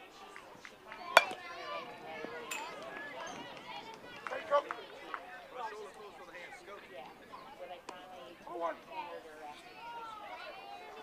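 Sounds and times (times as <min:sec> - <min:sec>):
bat striking baseball: 0:01.2 - 0:01.4.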